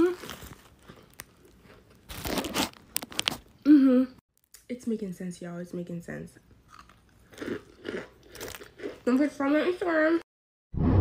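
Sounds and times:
person chewing crunchily: 0.0 - 3.5, 6.6 - 9.1.

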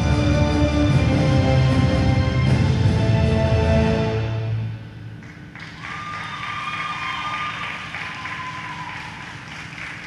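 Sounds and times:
audience applause: 5.6 - 10.0.

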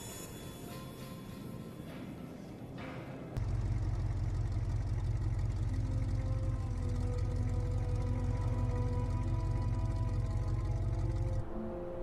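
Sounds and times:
vehicle engine rumbling: 2.6 - 11.6
slow held score music: 5.0 - 12.0.

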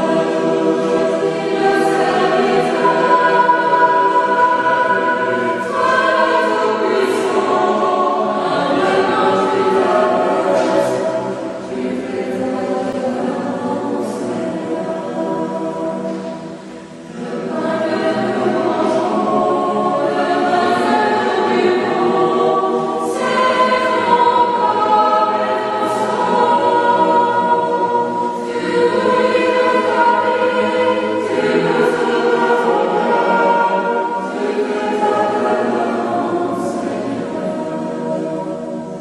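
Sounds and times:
choir singing a hymn: 0.0 - 39.0.

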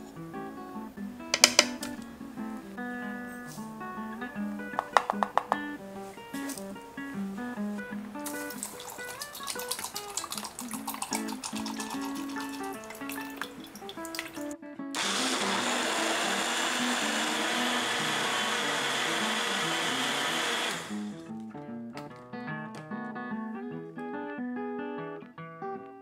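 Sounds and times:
guitar music: 0.0 - 26.0
blender running: 15.0 - 21.2.

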